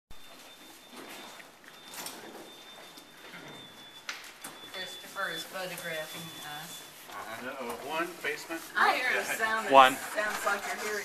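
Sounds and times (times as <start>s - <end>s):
shuffling footsteps: 0.2s - 9.5s.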